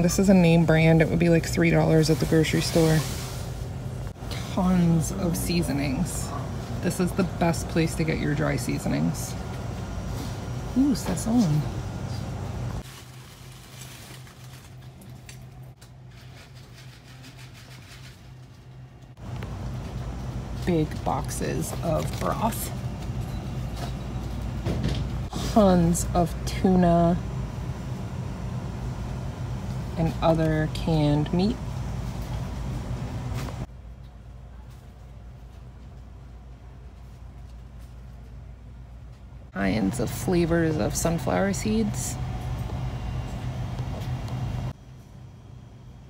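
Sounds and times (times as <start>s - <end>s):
low background hum: 0.0s - 46.0s.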